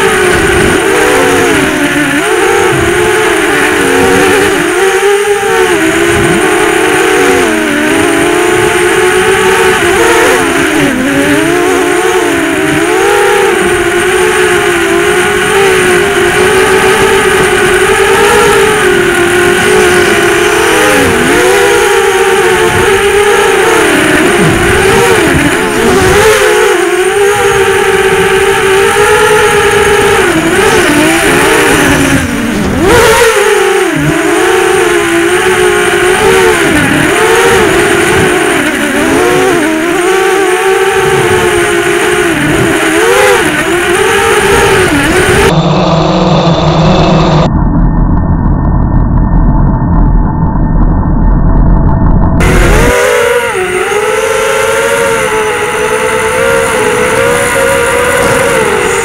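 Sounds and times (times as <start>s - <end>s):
quadcopter motors whining: 0.0s - 47.5s, 52.4s - 59.0s.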